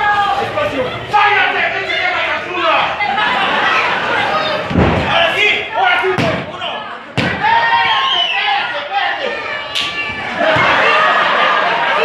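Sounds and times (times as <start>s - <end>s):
people shouting: 3.0s - 12.0s.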